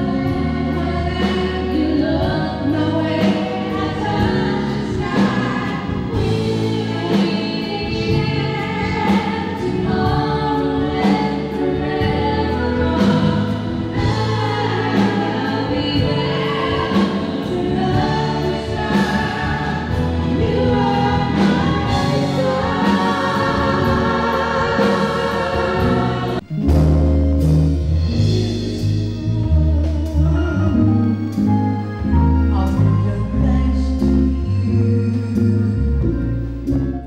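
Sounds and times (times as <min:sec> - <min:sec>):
women singing a duet: 0:00.0 - 0:26.4
live instrumental accompaniment: 0:00.0 - 0:37.0.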